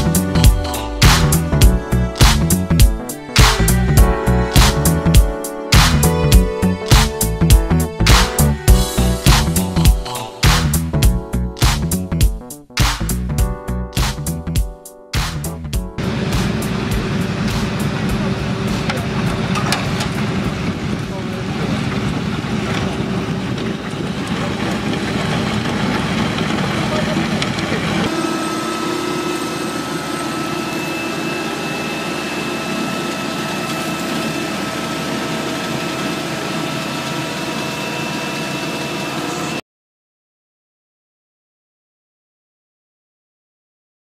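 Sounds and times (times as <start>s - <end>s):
road-marking machine rumbling: 0.0s - 5.1s, 16.0s - 39.4s
mowing truck whine over engine: 0.0s - 5.2s, 16.0s - 39.6s.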